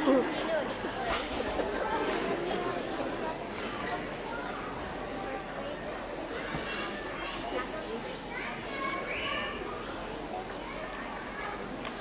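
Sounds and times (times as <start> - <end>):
children's chatter: 0.0 - 12.0.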